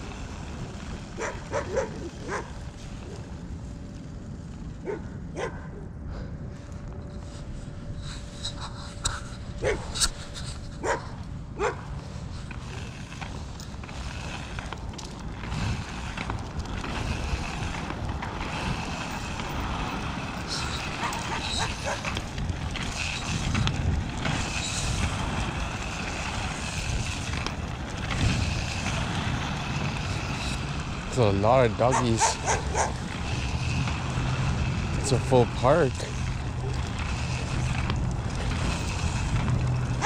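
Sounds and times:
rushing noise with low rumble: 0:00.0 - 0:40.0
dog whining: 0:20.5 - 0:22.0.

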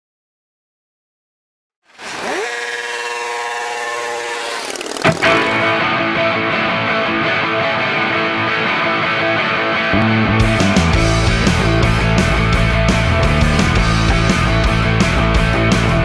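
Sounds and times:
gliding engine-like whine: 0:02.4 - 0:06.5
electric guitar playing: 0:04.0 - 0:16.0.

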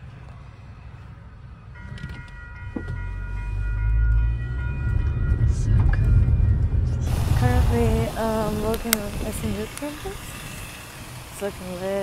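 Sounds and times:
train rumbling past: 0:00.0 - 0:12.0
steady high tones: 0:07.1 - 0:12.0.

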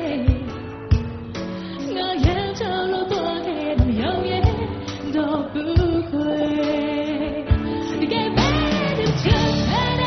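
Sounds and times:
woman singing: 0:00.0 - 0:01.0, 0:01.6 - 0:10.0
band playing: 0:07.5 - 0:10.0.

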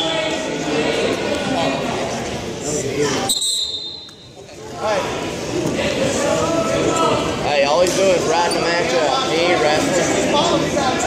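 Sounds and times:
voices echoing in a gymnasium: 0:00.0 - 0:11.0.

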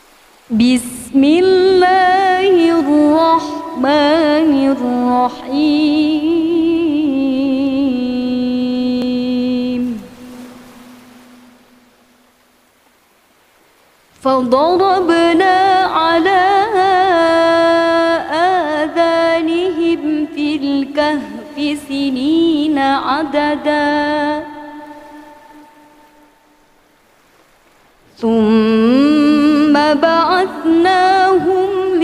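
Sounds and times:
faint hiss: 0:00.0 - 0:32.0
reverberant reciting voice: 0:00.5 - 0:11.8, 0:14.2 - 0:26.4, 0:28.1 - 0:32.0.

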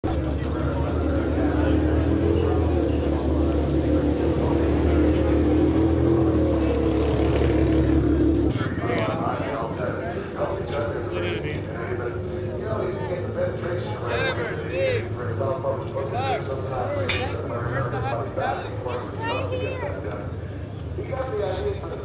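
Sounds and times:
crowd chatter: 0:00.0 - 0:22.0
race car engine idling: 0:00.0 - 0:22.0.

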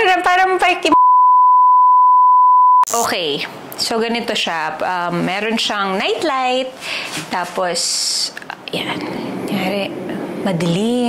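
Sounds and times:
steady test tone beep: 0:00.9 - 0:03.0.

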